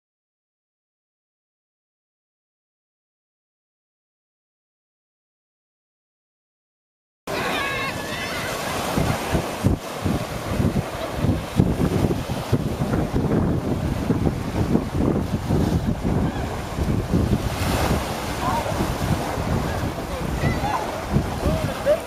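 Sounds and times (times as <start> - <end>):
faint voices calling out: 7.3 - 9.4, 16.1 - 16.8, 18.3 - 22.0
small waves washing onto shore: 7.3 - 22.0
wind buffeting microphone: 7.3 - 22.0.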